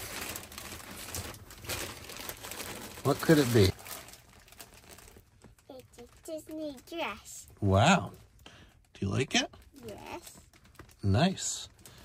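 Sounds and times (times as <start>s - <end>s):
plastic bag crinkling: 0.0s - 7.0s, 9.6s - 12.0s.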